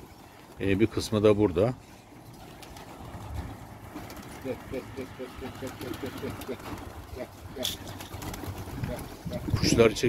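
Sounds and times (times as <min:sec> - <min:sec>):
pigeons cooing: 0:01.8 - 0:10.0
wind rumble on microphone: 0:08.5 - 0:10.0.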